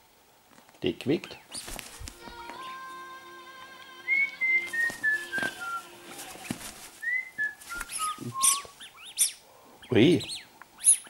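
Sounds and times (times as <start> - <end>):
sharp high chirps: 2.6 - 6.1.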